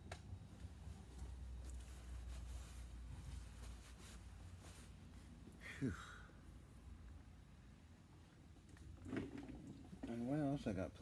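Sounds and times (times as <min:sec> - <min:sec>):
rustling and handling noises: 0:00.0 - 0:05.6.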